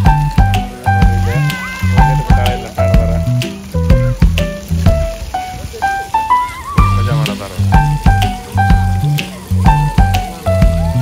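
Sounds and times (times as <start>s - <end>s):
fountain jets spraying water: 0.0s - 11.0s
music with steady beat: 0.0s - 11.0s.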